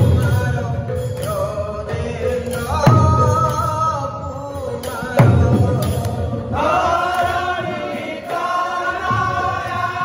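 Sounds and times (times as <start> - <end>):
men singing together: 0.0 - 10.0.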